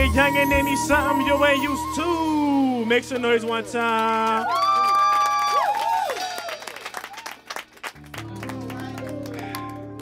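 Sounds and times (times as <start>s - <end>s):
bass and keyboard chord vamp: 0.0s - 3.2s
people clapping: 2.6s - 10.0s.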